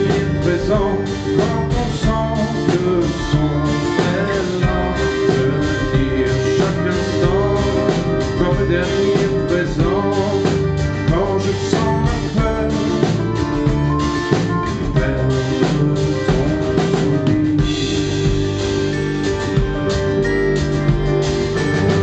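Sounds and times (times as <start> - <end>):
live band playing: 0.0 - 22.0
steady drum beat: 0.0 - 22.0.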